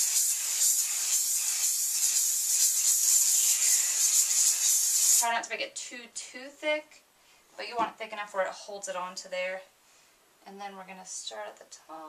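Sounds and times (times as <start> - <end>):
aerosol can spraying: 0.0 - 5.3.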